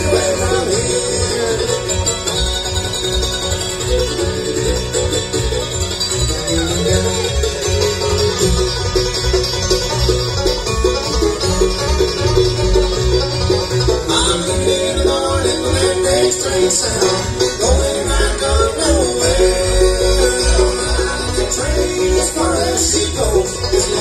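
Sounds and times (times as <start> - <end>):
acoustic guitar: 0.0 - 24.0
banjo picking lead: 0.0 - 24.0
upright bass: 0.0 - 24.0.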